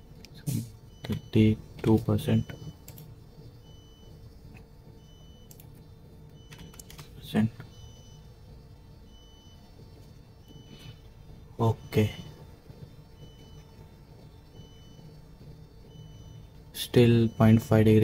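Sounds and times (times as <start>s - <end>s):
low room hum: 0.0s - 18.0s
computer keyboard clicks: 2.8s - 3.1s, 5.5s - 5.7s, 6.4s - 7.1s.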